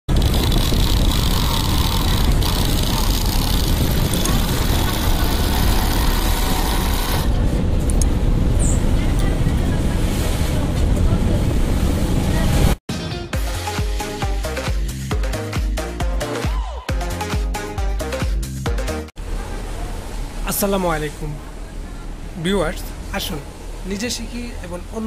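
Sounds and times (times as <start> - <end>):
sewing machine running: 0.1 - 7.4
loud steady low hum: 0.1 - 9.8.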